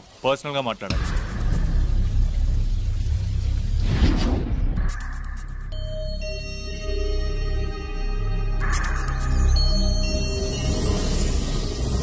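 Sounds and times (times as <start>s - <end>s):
speech: 0.2s - 1.0s
deep rumble: 0.9s - 6.0s.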